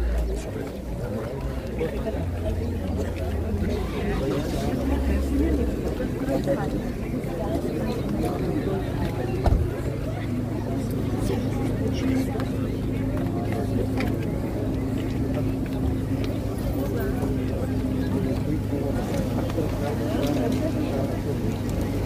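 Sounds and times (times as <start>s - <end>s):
indistinct chatter of people: 0.0s - 22.0s.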